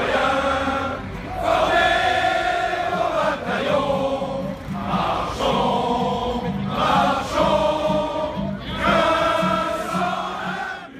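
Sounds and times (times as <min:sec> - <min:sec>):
crowd singing in unison: 0:00.0 - 0:10.9.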